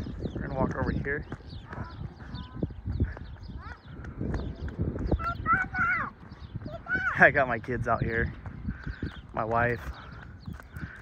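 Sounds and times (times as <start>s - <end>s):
footsteps crunching on dirt: 0.0s - 11.0s
small birds chirping: 0.0s - 11.0s
wind rumble on microphone: 0.0s - 11.0s.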